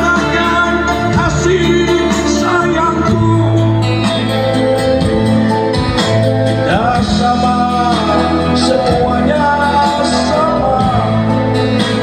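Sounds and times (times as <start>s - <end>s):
person singing: 0.0s - 5.7s, 6.3s - 12.0s
guitar: 0.0s - 12.0s
live band playing slow song: 0.0s - 12.0s.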